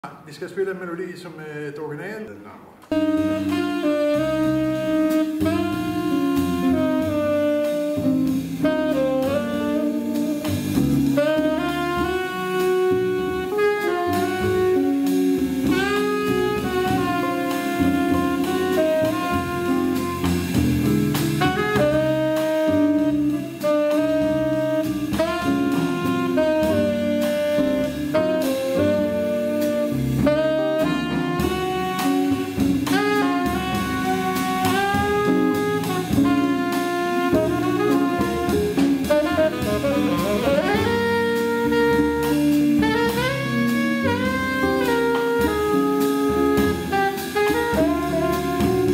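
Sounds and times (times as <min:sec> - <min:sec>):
bass accompaniment: 0:00.0 - 0:48.9
drum kit with cymbals: 0:02.8 - 0:48.9
tenor saxophone melody: 0:02.8 - 0:48.9.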